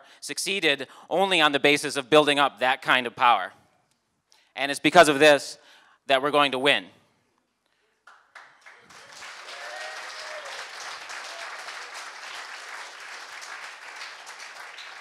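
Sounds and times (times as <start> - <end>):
audience applauding: 8.0 - 15.0.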